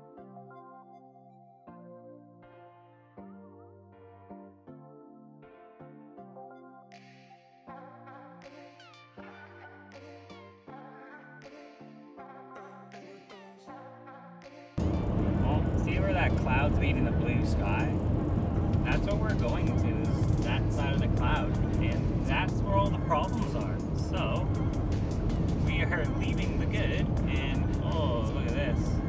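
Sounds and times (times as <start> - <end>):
song with singing voice: 7.7 - 14.8
car road and engine noise: 14.8 - 29.0.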